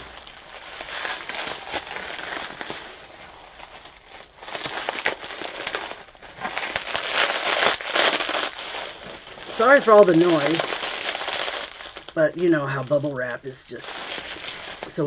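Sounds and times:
bubble wrap crinkling: 0:00.0 - 0:15.0.

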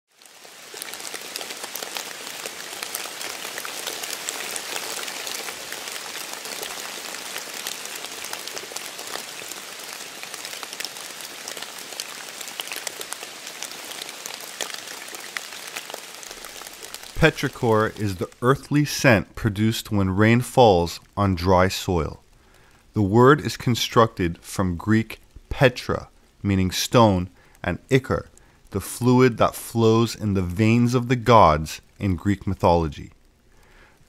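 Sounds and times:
rain falling on pond: 0:00.1 - 0:34.0.

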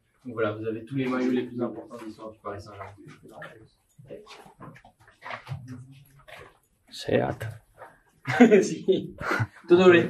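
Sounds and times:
indistinct voices talking: 0:00.3 - 0:04.4, 0:08.3 - 0:10.0.

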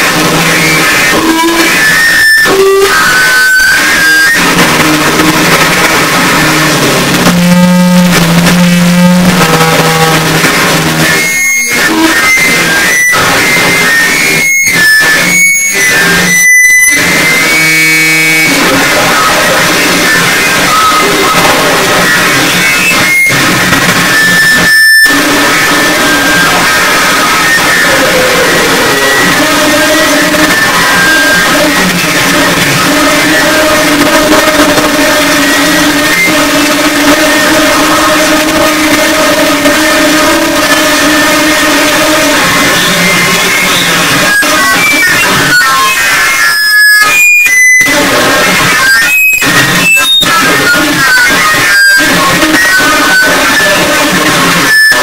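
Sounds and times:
low droning tones: 0:00.0 - 0:46.4
distorted electronic noise wall: 0:00.0 - 0:55.0.

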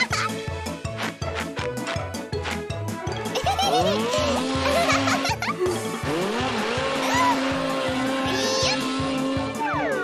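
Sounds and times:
cartoon background music: 0:00.0 - 0:10.0
snow scooter speeding and skidding: 0:03.6 - 0:10.0.

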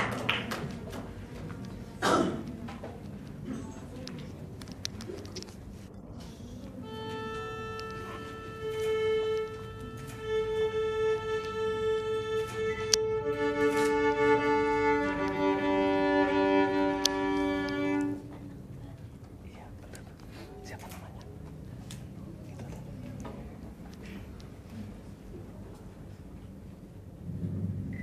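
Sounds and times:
solo violin: 0:06.8 - 0:18.3.

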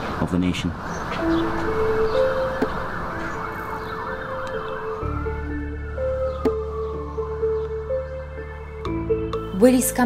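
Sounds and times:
emergency vehicle siren wailing: 0:01.0 - 0:09.4
music with long held notes: 0:01.1 - 0:10.0.

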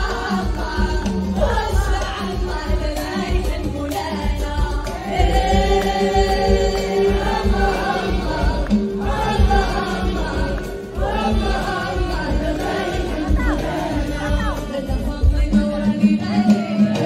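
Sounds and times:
chorus of voices singing: 0:00.0 - 0:17.0
woman singing lead: 0:00.0 - 0:17.0.

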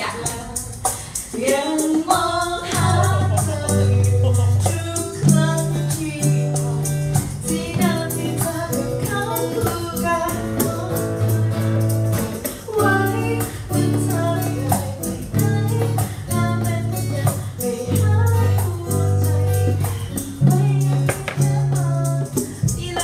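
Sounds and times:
hand percussion beat: 0:00.0 - 0:23.0
woman singing: 0:00.0 - 0:23.0
strummed acoustic guitar: 0:01.4 - 0:23.0.

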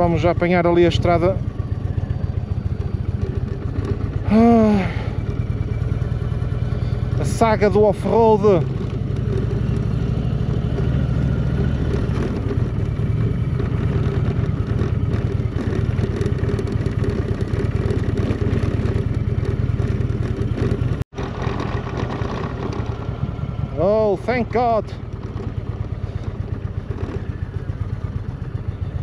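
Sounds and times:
motorcycle engine running slowly: 0:00.0 - 0:29.0
rattle of riding over gravel: 0:00.0 - 0:29.0.

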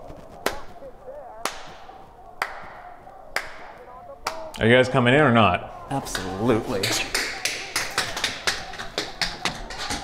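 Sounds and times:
slow hand clapping: 0:01.4 - 0:01.8, 0:02.4 - 0:02.8, 0:03.4 - 0:04.6, 0:06.1 - 0:10.0.

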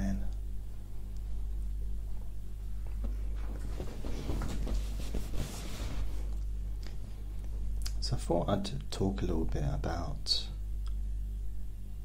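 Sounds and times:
low electrical hum: 0:00.0 - 0:12.0
soft rustling: 0:00.7 - 0:07.7.

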